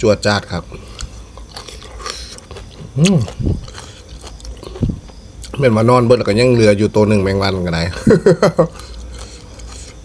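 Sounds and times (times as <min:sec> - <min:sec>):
man chewing food: 0:00.7 - 0:05.6, 0:08.0 - 0:10.0
man humming: 0:03.0 - 0:03.6.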